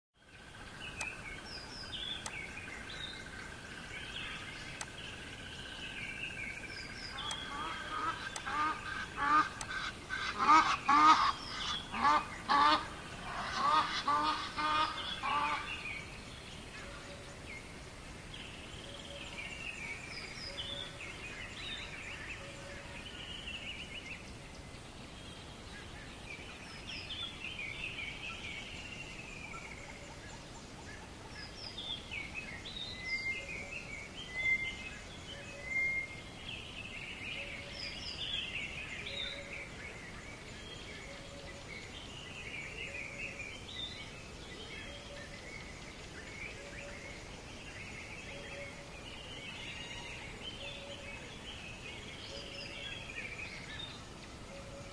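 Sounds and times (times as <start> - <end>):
background hiss: 0.2 - 54.9
birds chirping and warbling: 0.2 - 54.9.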